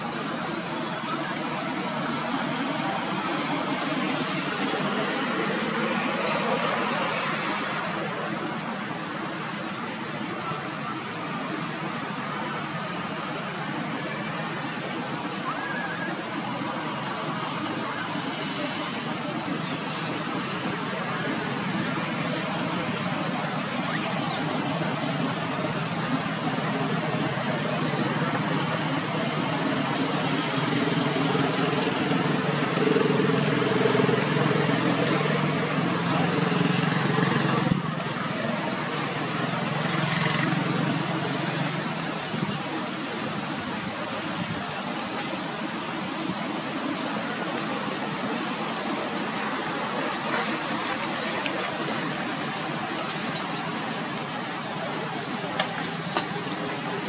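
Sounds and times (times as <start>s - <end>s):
vehicle engine drone: 0.0s - 57.0s.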